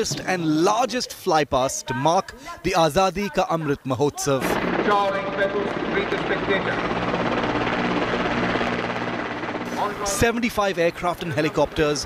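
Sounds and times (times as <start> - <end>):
helicopters droning: 4.4 - 12.0.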